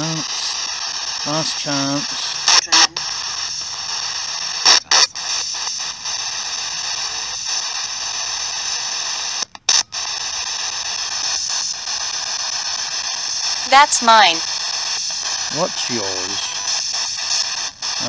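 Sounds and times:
radio static hiss: 0:00.0 - 0:18.0.

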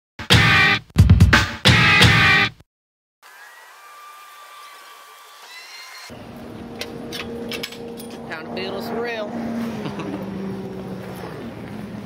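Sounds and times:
chain-link gate clicks and knocks: 0:06.8 - 0:08.3.

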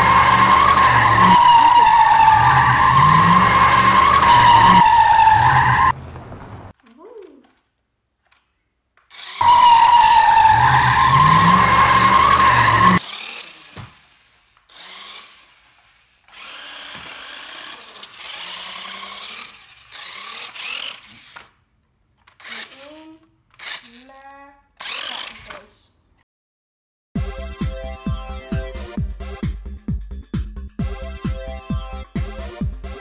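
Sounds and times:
toy car electric motor whining: 0:00.0 - 0:06.0, 0:09.1 - 0:25.7.

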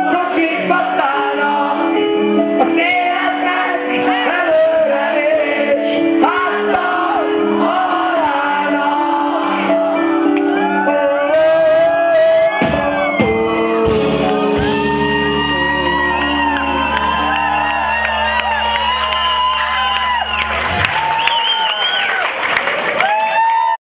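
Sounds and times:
crowd cheering and shouting: 0:06.2 - 0:23.8
rock band holding a chord: 0:12.6 - 0:21.0.

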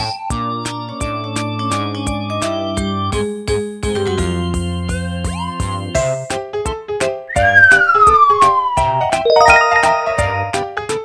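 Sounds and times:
falling whistle sound effect: 0:07.3 - 0:10.6
upbeat children's music: 0:07.3 - 0:11.0.

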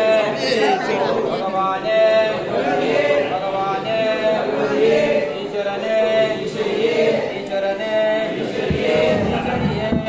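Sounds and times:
group chanting in unison: 0:00.0 - 0:10.0.

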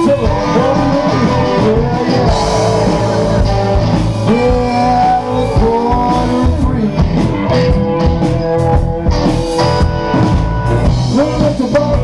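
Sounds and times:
bass guitar: 0:00.0 - 0:12.0
electric guitar: 0:00.0 - 0:12.0
drum hits: 0:00.3 - 0:12.0.

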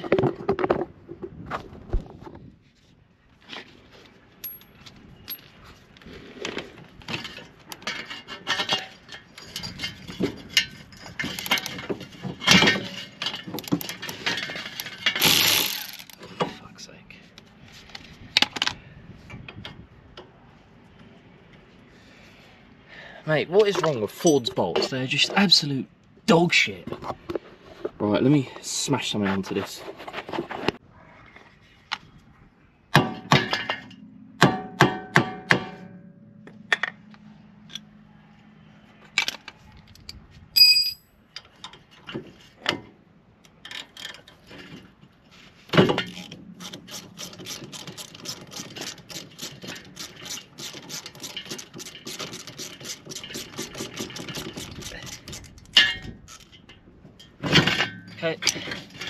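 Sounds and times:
ratchet spanner clicking: 0:15.2 - 0:16.2
hammer striking metal tool: 0:32.9 - 0:36.9.

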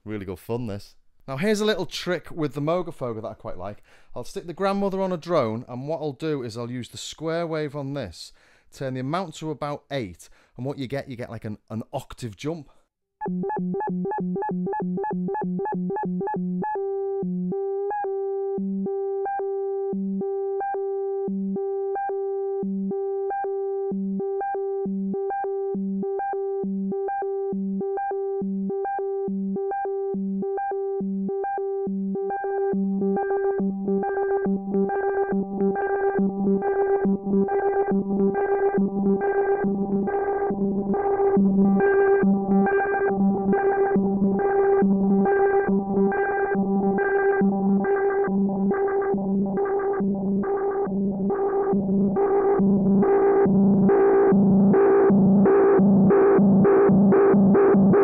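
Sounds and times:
synthesizer drone jumping octaves: 0:13.2 - 0:58.0.

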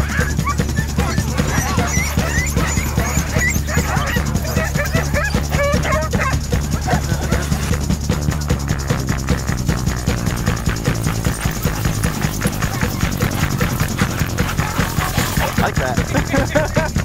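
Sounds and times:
background music: 0:00.0 - 0:17.0
sled dogs barking and yipping: 0:00.0 - 0:17.0.

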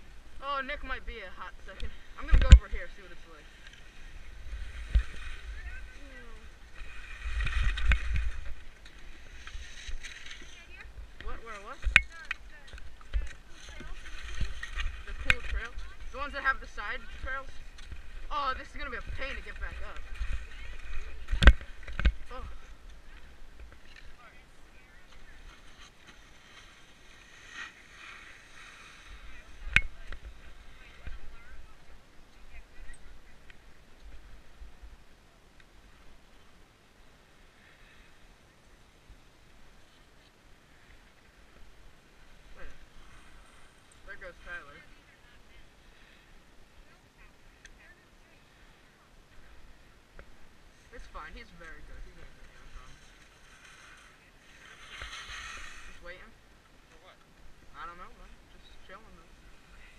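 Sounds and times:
wind rumbling on microphone: 0:00.0 - 0:35.2
skis scraping over snow: 0:01.7 - 0:12.7, 0:13.3 - 0:22.7, 0:23.8 - 0:31.8, 0:50.7 - 0:56.4.

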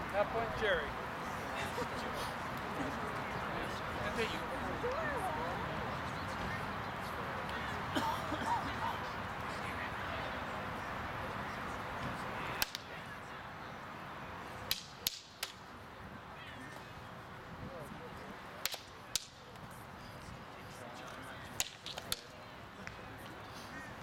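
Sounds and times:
wooden swords clacking: 0:12.6 - 0:12.9, 0:14.7 - 0:15.6, 0:18.6 - 0:19.4, 0:21.6 - 0:22.3.

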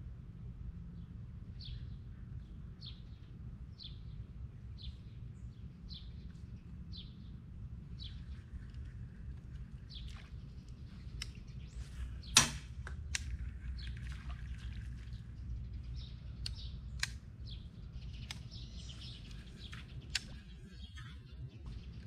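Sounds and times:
steady low rumble: 0:00.0 - 0:22.0
birds chirping: 0:01.0 - 0:22.0
sharp clicks: 0:16.4 - 0:17.3, 0:18.1 - 0:18.6, 0:19.6 - 0:20.5.

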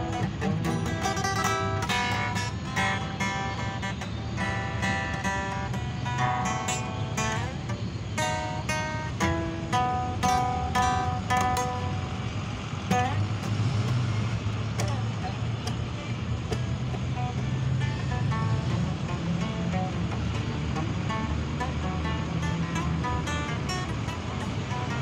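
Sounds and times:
acoustic guitar picking: 0:00.0 - 0:25.0
low rumble of street traffic: 0:00.0 - 0:25.0.

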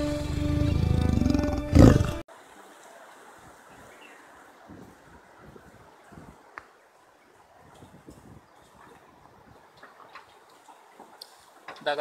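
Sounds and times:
intro music: 0:00.0 - 0:02.2
big cat roar: 0:00.5 - 0:02.2
faint outdoor hiss: 0:01.8 - 0:12.0.

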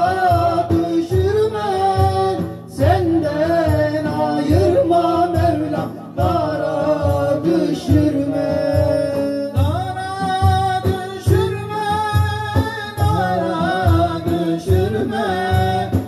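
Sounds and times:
frame drum beat: 0:00.0 - 0:16.0
men singing a hymn: 0:00.0 - 0:16.0.

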